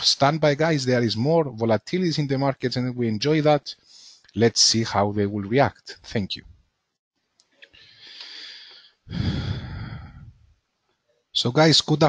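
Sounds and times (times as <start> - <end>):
man sighing into microphone: 8.1 - 10.4.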